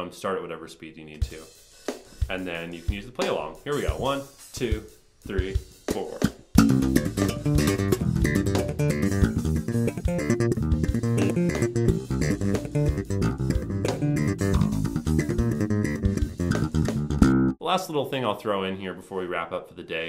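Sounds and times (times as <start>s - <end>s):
programmed drum beat: 1.1s - 17.6s
slap bass groove: 2.2s - 17.6s.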